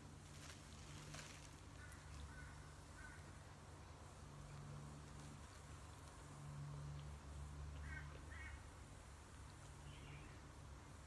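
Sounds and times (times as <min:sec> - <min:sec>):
faint rustle: 0:00.0 - 0:03.3, 0:05.0 - 0:07.0.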